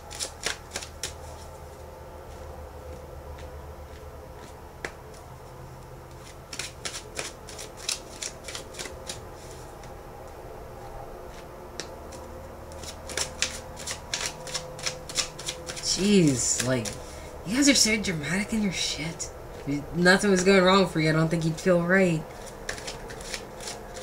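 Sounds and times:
cards being shuffled: 0.0 - 1.5, 6.1 - 10.0, 11.3 - 17.2, 22.3 - 24.0.

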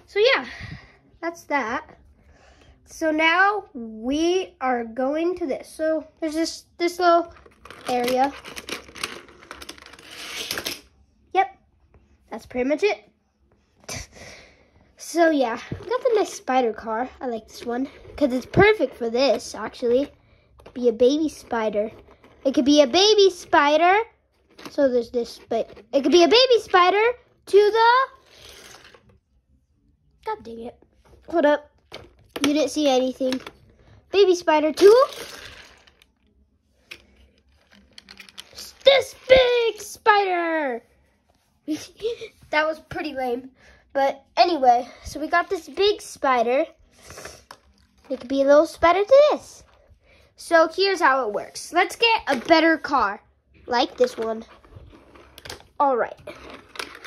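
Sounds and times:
toy car rolling on plastic track: 7.6 - 10.8, 28.2 - 29.0, 34.8 - 36.0.

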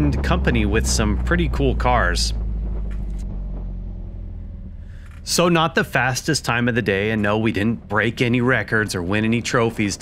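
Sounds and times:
car engine running low: 0.0 - 10.0.

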